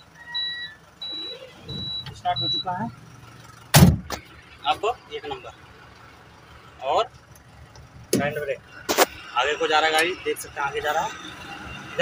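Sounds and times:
truck engine running: 0:00.0 - 0:12.0
loud thump in truck cab: 0:03.7 - 0:04.2.

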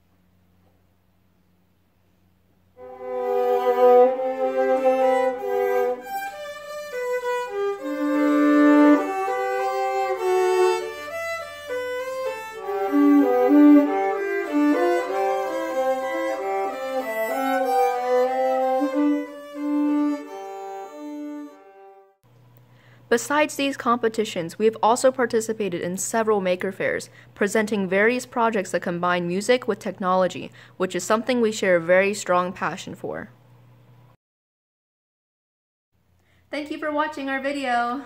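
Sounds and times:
two violins playing a duet: 0:02.8 - 0:22.2.

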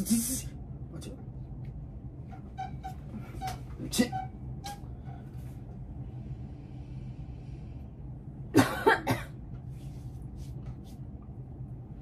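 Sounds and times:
person coughing: 0:08.5 - 0:09.4.

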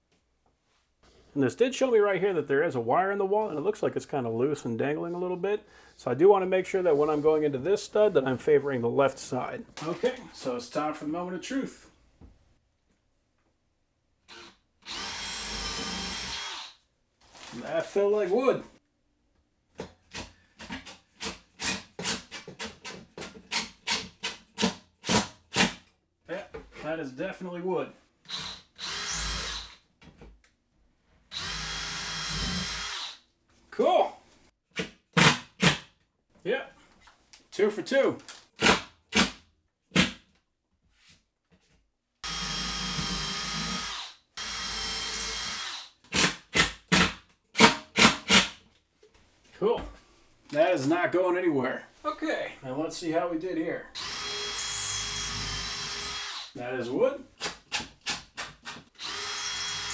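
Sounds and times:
cordless drill running: 0:14.3 - 0:16.8, 0:28.3 - 0:29.8, 0:31.3 - 0:33.2, 0:42.2 - 0:46.3, 0:54.0 - 0:56.6, 0:59.0 - 0:59.9.

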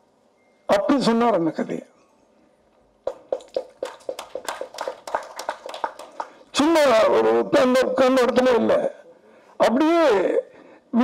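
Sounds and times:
people clapping: 0:03.0 - 0:06.6.

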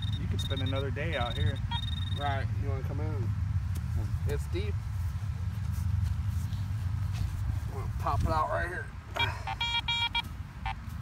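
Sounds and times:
metal detector beeping: 0:00.0 - 0:02.4, 0:09.2 - 0:10.8.

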